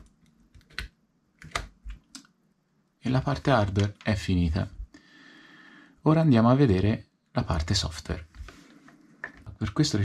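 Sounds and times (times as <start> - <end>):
plastic clicks and knocks: 9.2 - 9.8.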